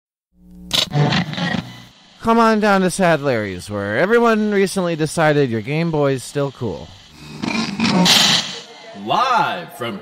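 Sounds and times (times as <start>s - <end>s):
loud roar: 7.1s - 8.6s.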